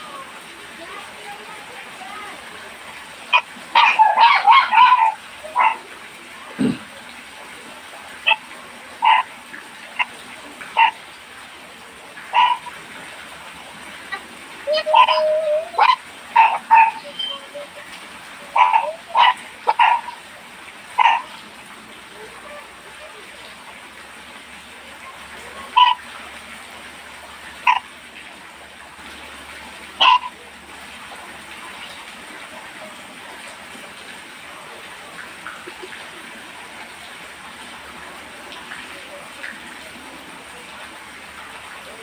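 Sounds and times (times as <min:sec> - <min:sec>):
dog barking: 0:03.3 - 0:05.8, 0:09.0 - 0:09.3, 0:10.8 - 0:11.0, 0:12.3 - 0:12.7, 0:14.8 - 0:17.0, 0:18.6 - 0:20.2, 0:21.0 - 0:21.3, 0:25.8 - 0:26.0, 0:27.6 - 0:27.8, 0:30.0 - 0:30.3.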